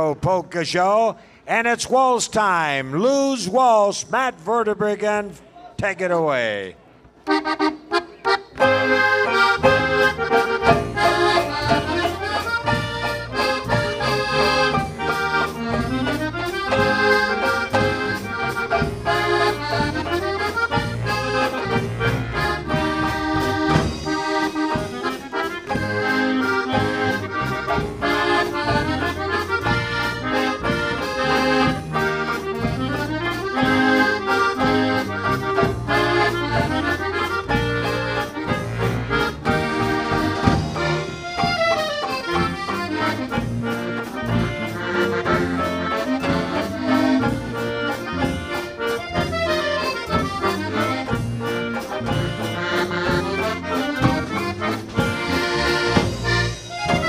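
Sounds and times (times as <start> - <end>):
accordion melody: 7.2 - 57.0
steady bass line: 8.6 - 57.0.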